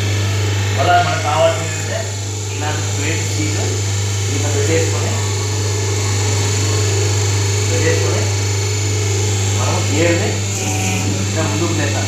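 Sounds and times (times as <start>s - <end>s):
machine motor humming: 0.0s - 12.0s
indistinct voices: 0.7s - 12.0s.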